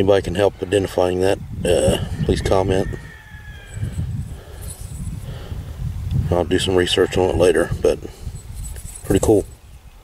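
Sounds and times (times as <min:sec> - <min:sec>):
low rumble on microphone: 0:01.4 - 0:09.6.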